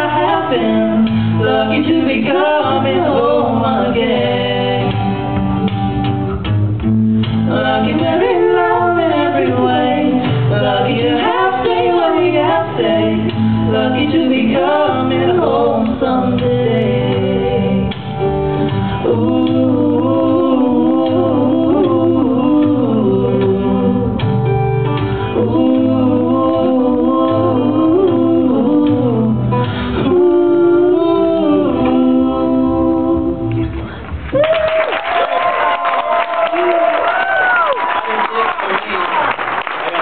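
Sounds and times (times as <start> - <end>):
man and woman singing duet: 0.0 - 5.6, 7.2 - 34.0
acoustic guitar: 0.0 - 34.4.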